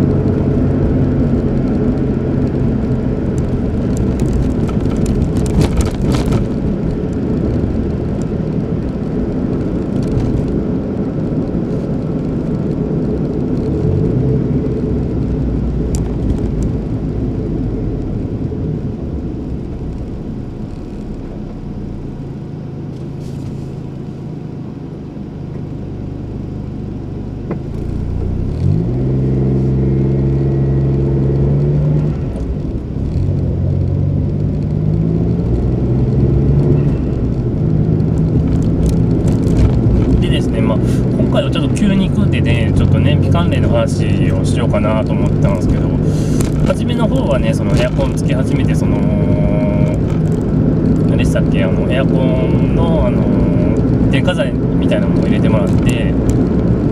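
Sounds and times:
car engine: 0.0s - 56.9s
road noise: 0.0s - 56.9s.

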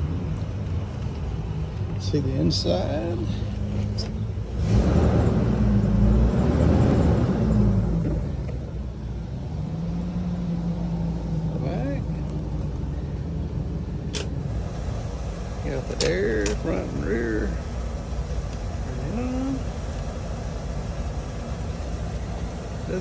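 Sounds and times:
bus engine idling: 0.0s - 23.0s.

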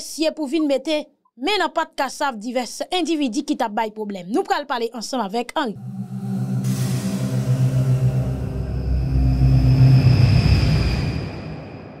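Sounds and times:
deep drone: 5.8s - 12.0s
whoosh: 5.8s - 12.0s.

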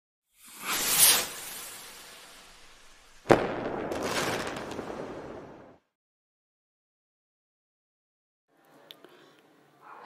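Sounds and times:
whoosh: 0.4s - 3.9s
noisy tail with crackles: 0.4s - 5.9s.

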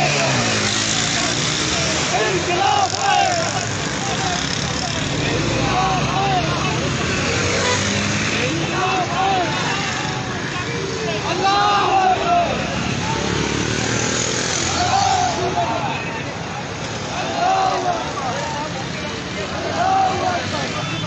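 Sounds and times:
men shouting: 0.0s - 13.6s, 14.5s - 16.4s, 17.0s - 18.6s, 19.4s - 21.0s
crowd of men talking: 0.0s - 21.0s.

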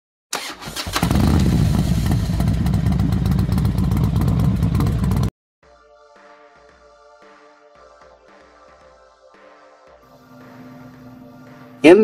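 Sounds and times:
motorcycle engine starting and running: 0.3s - 5.3s.

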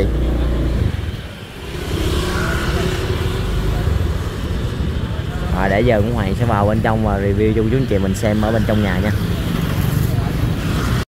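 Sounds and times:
motorbikes passing: 0.0s - 11.0s.

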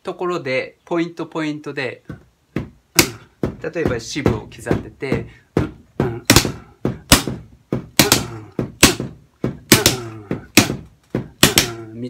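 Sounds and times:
drumsticks striking cardboard boxes: 2.1s - 11.9s.

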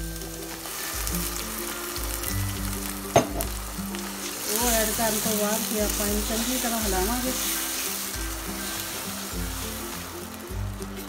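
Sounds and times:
tomato puree sizzling in oil: 0.0s - 11.0s
wooden spatula stirring in pot: 0.2s - 11.0s.

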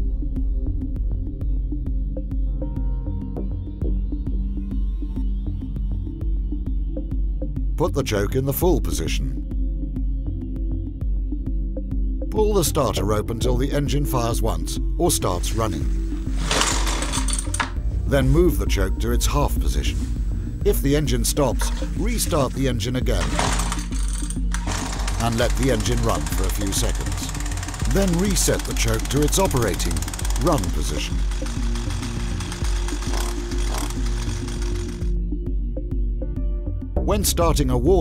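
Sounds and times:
background music: 0.0s - 38.0s
trimmer engine rattling: 15.5s - 17.8s, 21.5s - 35.2s
recoil starter rope whirring: 15.9s - 17.8s, 21.6s - 35.1s.

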